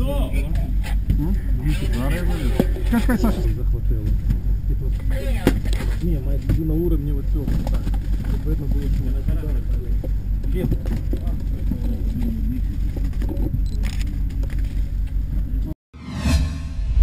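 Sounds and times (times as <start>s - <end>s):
people talking: 0.0s - 12.9s
low engine rumble: 0.0s - 15.8s
whoosh sound effect: 16.0s - 17.0s.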